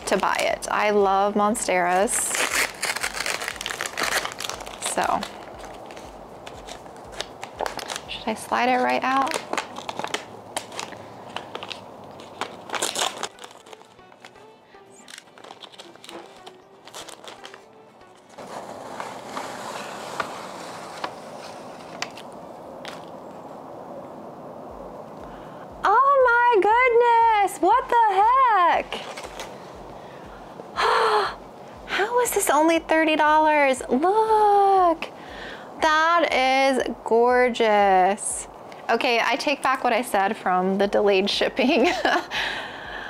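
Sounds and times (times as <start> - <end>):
paper bag crinkling: 1.9 - 23.2, 28.9 - 29.6
sung melody: 12.9 - 19.4.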